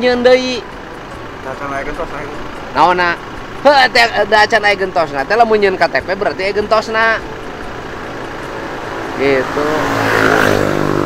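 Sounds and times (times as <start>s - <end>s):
road traffic noise: 0.0s - 11.0s
vehicle approaching: 0.0s - 11.0s.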